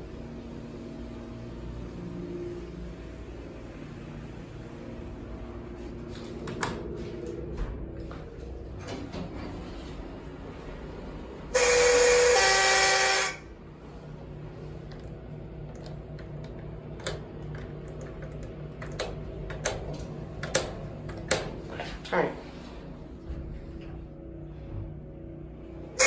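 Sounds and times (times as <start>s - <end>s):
elevator buzzer: 11.4s - 19.0s
sharp clicks and knocks: 14.9s - 21.6s.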